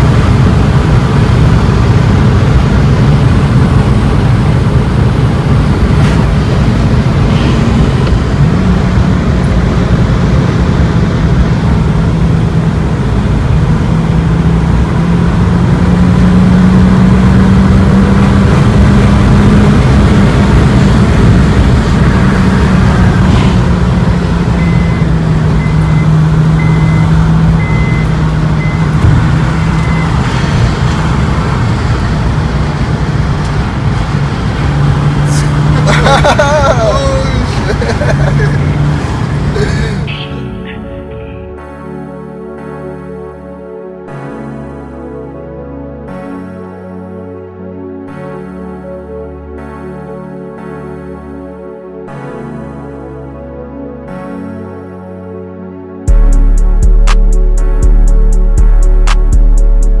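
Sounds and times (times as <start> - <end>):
car engine hum: 0.0 - 42.2, 56.1 - 60.0
tyre road rumble: 0.0 - 43.4, 56.1 - 60.0.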